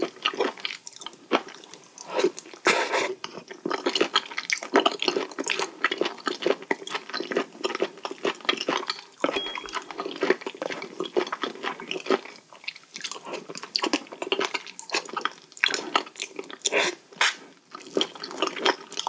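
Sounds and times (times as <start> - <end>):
wet chewing and slurping: 0.0 - 9.1, 10.9 - 19.0.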